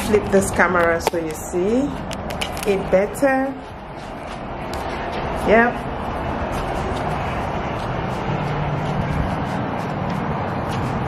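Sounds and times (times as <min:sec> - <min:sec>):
wind on microphone: 0:00.0 - 0:11.0.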